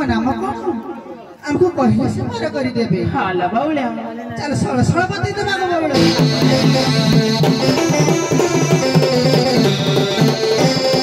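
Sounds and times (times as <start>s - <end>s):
person speaking into a microphone: 0.0s - 6.0s.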